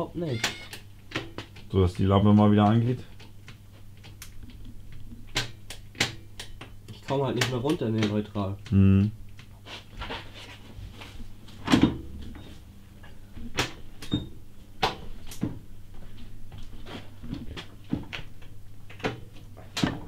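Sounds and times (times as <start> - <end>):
low steady hum: 0.0 - 20.0.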